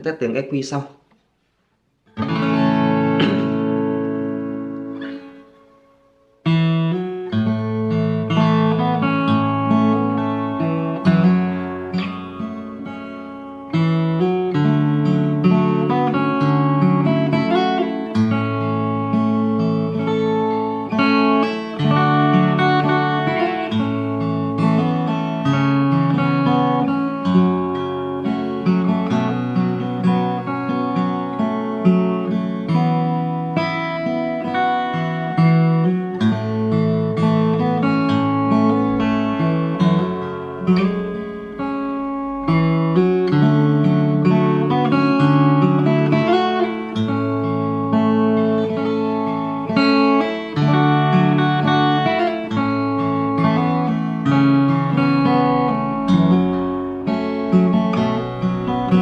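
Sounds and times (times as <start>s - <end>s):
acoustic guitar fingerstyle melody: 0.2s - 59.0s.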